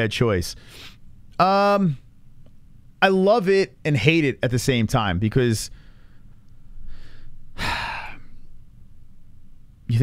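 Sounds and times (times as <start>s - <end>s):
man sighing: 7.6s - 8.4s.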